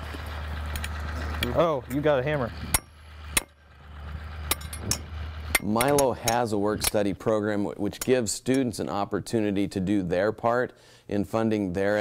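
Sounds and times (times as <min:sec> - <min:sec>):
mallet striking steel tines: 0:01.9 - 0:03.7, 0:04.3 - 0:07.0.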